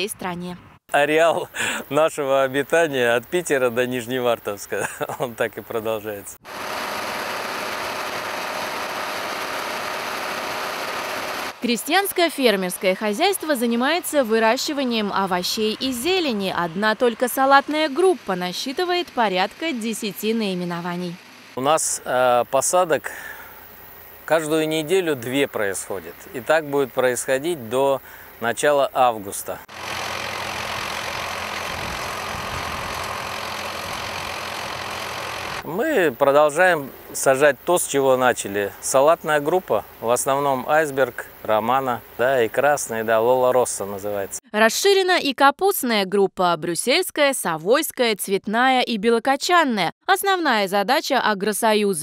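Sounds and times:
tractor tiller whirr and clatter: 6.4 - 11.7, 12.9 - 22.0, 29.6 - 44.4.

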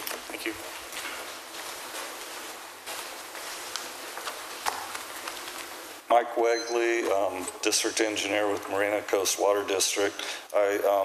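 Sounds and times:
paper rustling: 0.0 - 6.0
soft footsteps: 0.0 - 6.1
room noise hiss: 0.0 - 11.0.

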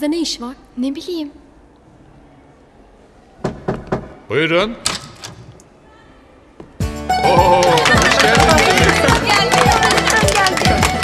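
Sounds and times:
knocks on a door: 3.4 - 4.1.

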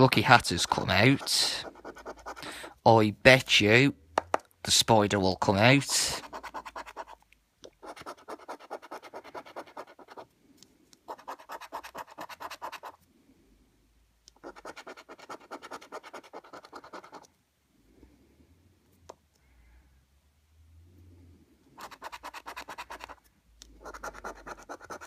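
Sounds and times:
coin scratching scratchcard: 0.8 - 2.6, 5.8 - 7.2, 7.8 - 10.2, 11.1 - 13.0, 14.4 - 17.2, 21.8 - 23.2, 23.8 - 25.0.

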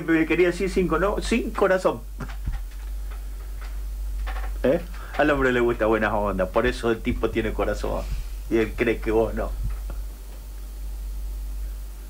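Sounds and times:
steady low hum: 0.0 - 12.0
voices: 4.6 - 9.6.

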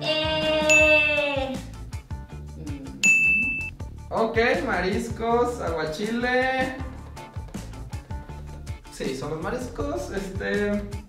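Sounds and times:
faint background music with beat: 0.0 - 11.0
bright ding chime: 0.7 - 1.2, 3.0 - 3.7.

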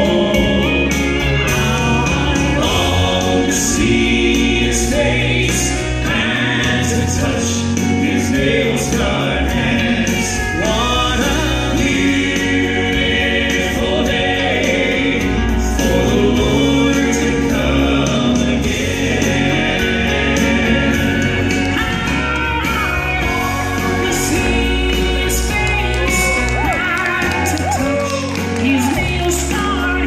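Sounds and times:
instrumental accompaniment: 0.0 - 30.0
male quartet singing in harmony: 0.0 - 30.0.

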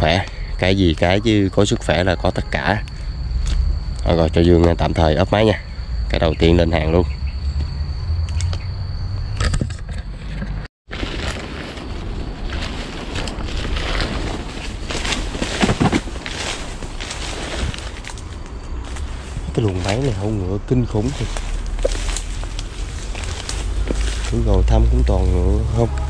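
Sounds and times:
insect drone: 0.0 - 26.0
low wind rumble: 0.0 - 26.0
footsteps through dry leaves and grass: 10.9 - 25.9.

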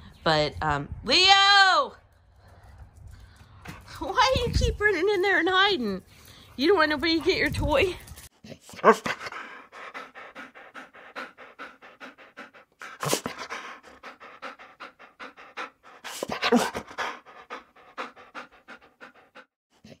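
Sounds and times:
dog panting: 5.8 - 19.9.

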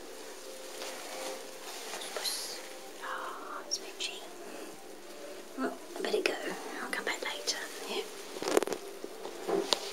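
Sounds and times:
person whispering softly: 1.8 - 4.8, 6.0 - 8.1.

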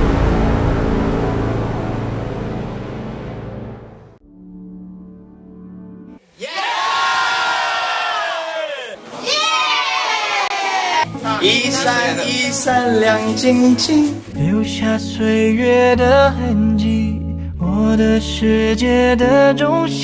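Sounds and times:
deep cinematic boom: 0.0 - 6.0
low steady tone: 0.0 - 6.0
group of people cheering: 6.4 - 12.2.

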